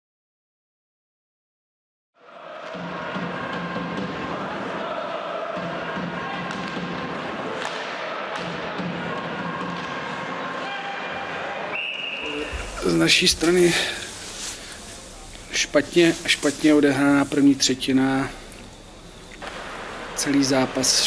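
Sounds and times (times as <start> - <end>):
crowd din: 2.2 - 15.5
hockey sticks and puck clacking: 6.4 - 10.2.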